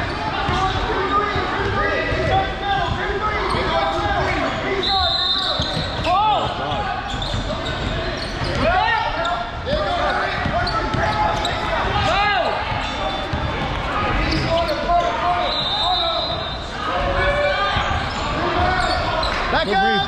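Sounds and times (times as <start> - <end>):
echoing voices in gym: 0.0 - 20.0.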